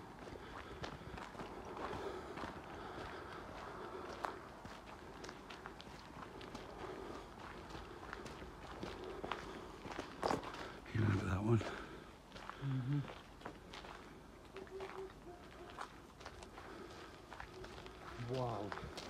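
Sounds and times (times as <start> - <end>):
footsteps on overgrown track: 0.0 - 19.0.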